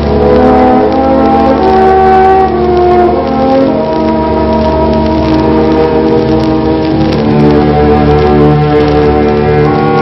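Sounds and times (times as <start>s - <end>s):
orchestral strings and brass chords: 0.0s - 10.0s.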